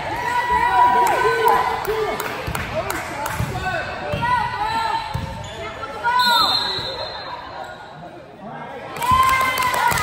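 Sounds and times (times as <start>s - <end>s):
voices in echoing gym: 0.0s - 10.0s
sneakers squeaking on gym floor: 5.0s - 8.0s.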